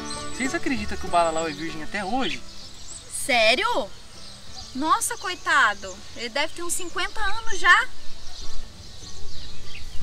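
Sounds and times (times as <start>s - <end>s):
soft background music: 0.0s - 7.8s
faint bird chirps: 0.0s - 10.0s.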